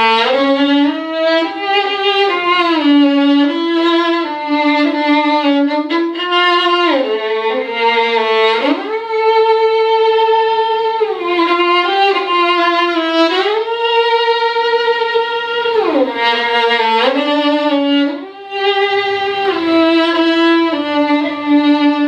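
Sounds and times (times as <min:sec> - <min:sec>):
solo violin slow melody: 0:00.0 - 0:22.0.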